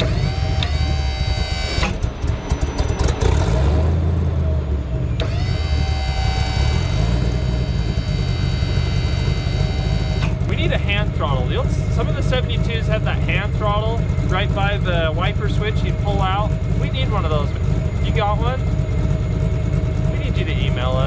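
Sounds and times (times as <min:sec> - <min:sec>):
hydraulic boom whine: 0:00.0 - 0:03.9, 0:05.0 - 0:12.4
truck engine running: 0:00.0 - 0:21.0.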